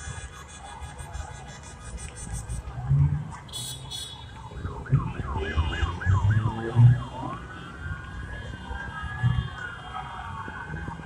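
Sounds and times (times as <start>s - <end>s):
emergency vehicle siren yelping: 0.0s - 11.0s.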